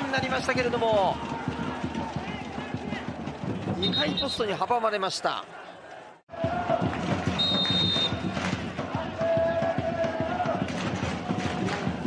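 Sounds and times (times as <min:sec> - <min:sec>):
stadium noise: 0:00.0 - 0:12.0.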